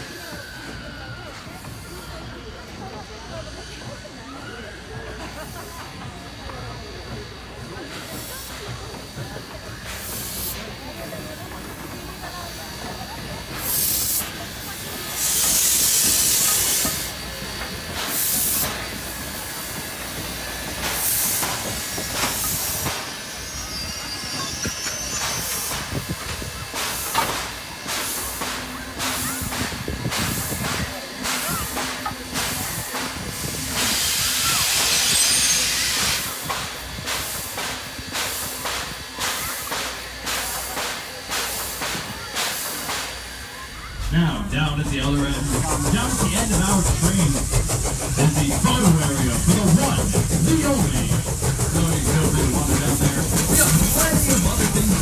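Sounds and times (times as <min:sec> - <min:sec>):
steam locomotive hissing: 0:00.0 - 0:55.0.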